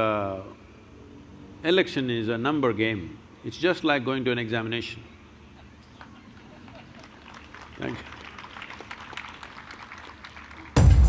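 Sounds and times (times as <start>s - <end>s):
crowd applauding: 6.0s - 11.0s
music with heavy drum beat: 10.8s - 11.0s.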